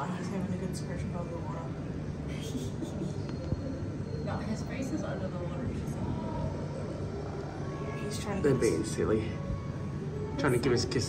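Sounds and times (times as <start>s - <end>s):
low indoor rumble: 0.0s - 11.0s.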